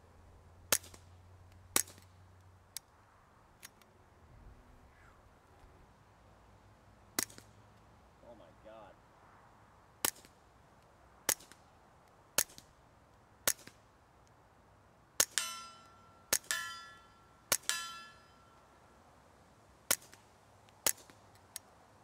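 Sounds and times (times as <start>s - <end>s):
suppressed pistol shots: 13.4s - 13.8s
ringing metallic clang: 15.3s - 18.7s.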